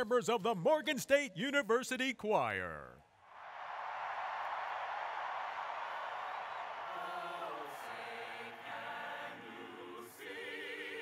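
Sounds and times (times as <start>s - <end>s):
stadium crowd cheering: 3.1s - 10.4s.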